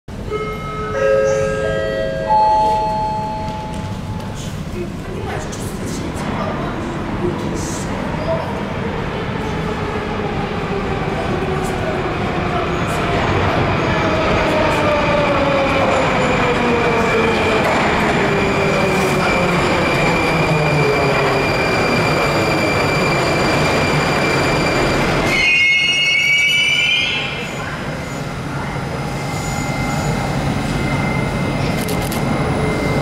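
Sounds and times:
train rumble: 0.9 - 25.4
high wheel squeal: 18.5 - 28.3, 29.1 - 31.8.

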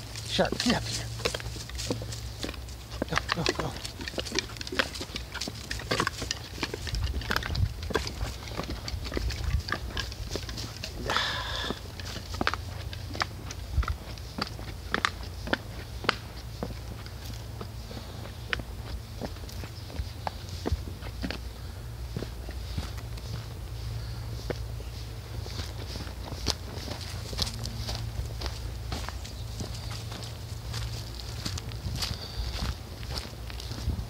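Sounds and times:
footsteps on wooden boardwalk: 0.0 - 34.0
rustle: 0.0 - 34.0.

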